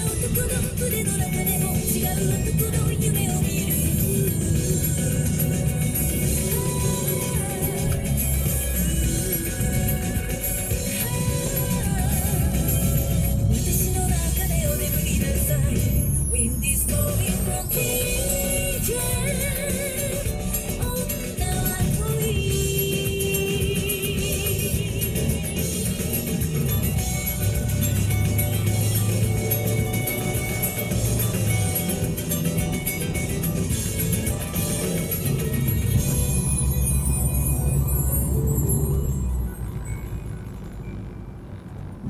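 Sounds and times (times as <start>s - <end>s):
music with wavering melody: 0.0s - 42.0s.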